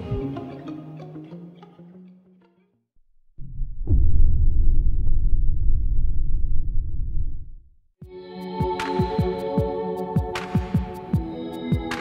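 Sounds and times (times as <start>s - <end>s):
deep steady rumble: 3.4s - 7.8s.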